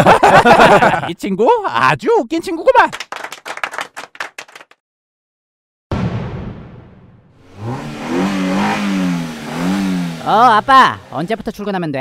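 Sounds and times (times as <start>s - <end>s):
loud hit: 5.9s - 8.0s
sports car engine revving: 7.4s - 11.4s.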